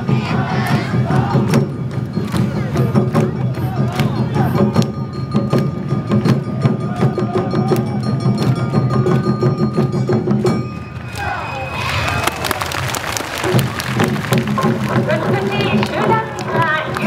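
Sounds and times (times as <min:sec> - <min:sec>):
drums beating: 0:00.0 - 0:17.0.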